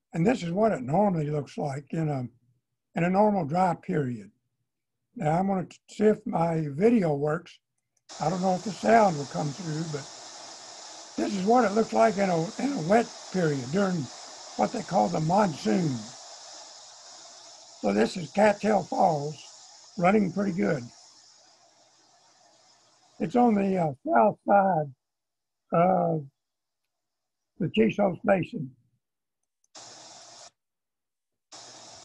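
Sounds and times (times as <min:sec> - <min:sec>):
waterfall hissing: 0:08.1 - 0:24.6, 0:29.8 - 0:30.5, 0:31.5 - 0:32.0.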